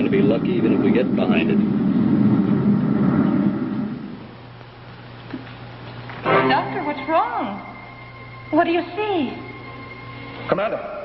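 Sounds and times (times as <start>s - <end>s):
rocket engine rumbling: 0.0s - 4.4s
low steady hum: 0.0s - 11.0s.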